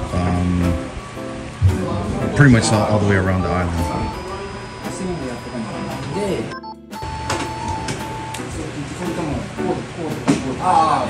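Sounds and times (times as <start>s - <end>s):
background music: 0.0s - 11.0s
voices: 0.0s - 11.0s.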